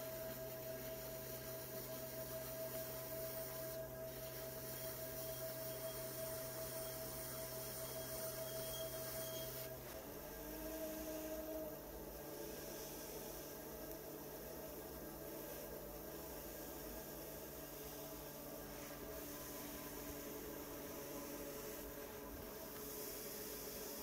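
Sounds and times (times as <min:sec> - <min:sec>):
pottery wheel motor humming: 0:00.0 - 0:24.0.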